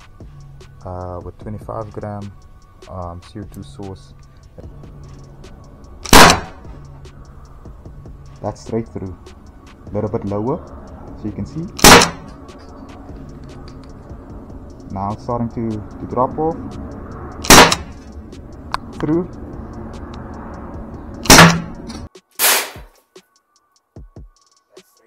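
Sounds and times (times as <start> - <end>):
sharp launcher shot: 6.0 - 6.6, 11.8 - 12.3, 17.4 - 18.0, 21.2 - 21.8, 22.4 - 22.9.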